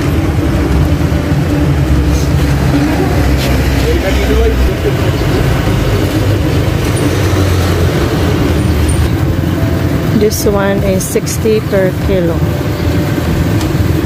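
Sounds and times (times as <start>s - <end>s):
vehicle engine rumbling: 0.0s - 14.0s
faint voices: 1.5s - 8.4s.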